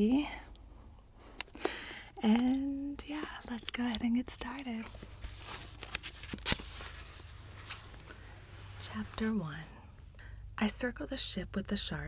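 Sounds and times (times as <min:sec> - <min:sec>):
paperback book rustling and knocking: 0:04.7 - 0:08.1.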